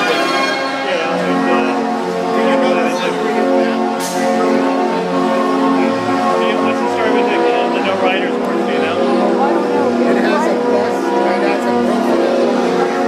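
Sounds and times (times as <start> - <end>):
band organ playing chords: 0.0 - 13.0.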